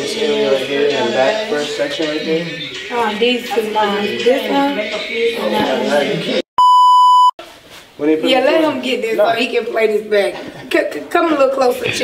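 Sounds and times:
electronic censor beep: 6.6 - 7.4.

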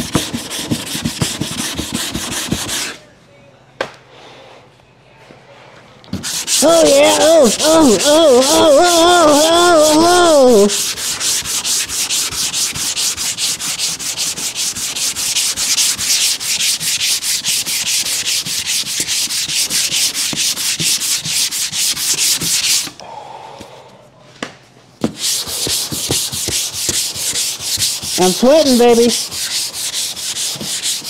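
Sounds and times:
sandpaper scraping on filler: 0.0 - 3.0, 6.2 - 23.0, 25.1 - 31.0.

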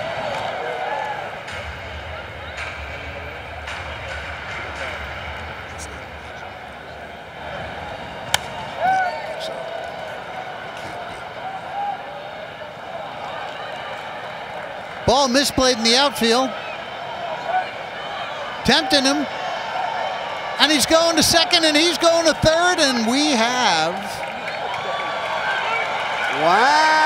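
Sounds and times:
bat hitting ball crack: 8.3 - 8.7
scattered voices and shouts: 15.0 - 17.8, 18.5 - 19.3, 20.6 - 24.3, 26.3 - 27.0.

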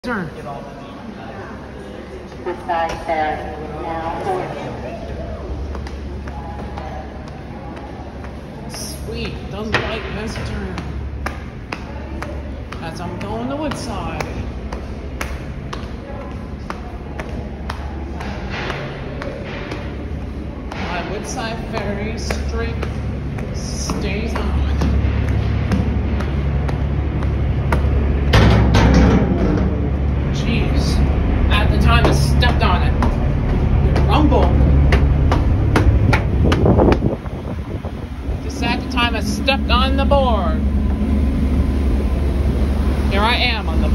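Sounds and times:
people talking: 0.0 - 28.3, 30.2 - 35.0, 38.2 - 40.7, 42.9 - 43.9
steady low hum: 0.0 - 43.9
ferry engines droning: 0.4 - 43.9
footsteps on tiled floor: 4.5 - 28.3.

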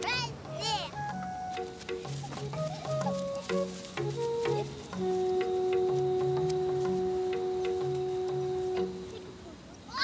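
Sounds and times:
children's background music: 0.0 - 9.4.

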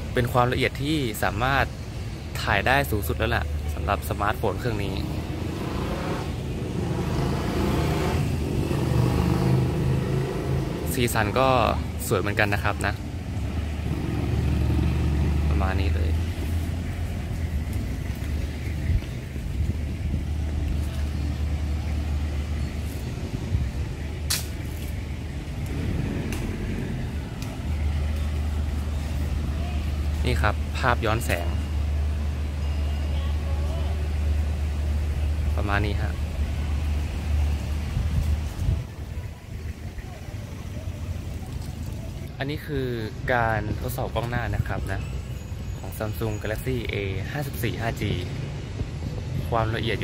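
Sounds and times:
vehicle engine rumble: 0.0 - 50.0.

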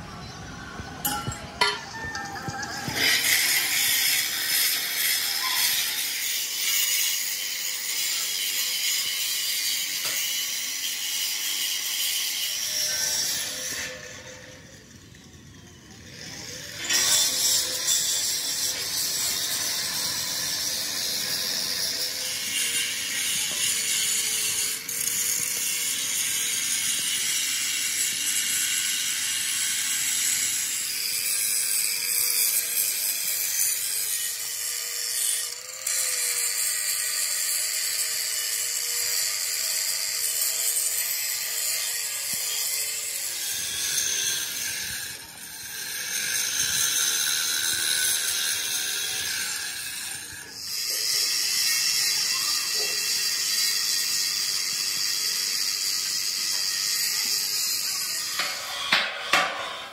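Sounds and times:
high-pitched metalworking hiss: 2.8 - 14.5, 16.3 - 59.9.

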